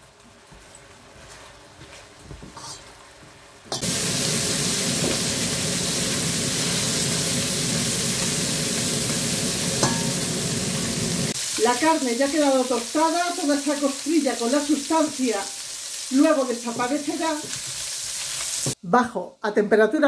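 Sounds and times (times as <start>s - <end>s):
meat sizzling in oil: 3.7s - 18.8s.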